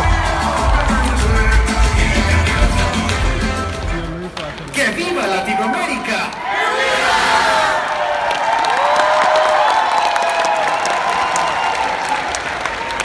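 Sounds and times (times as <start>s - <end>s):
audience applauding: 0.0s - 13.0s
cheering shouts: 5.0s - 13.0s.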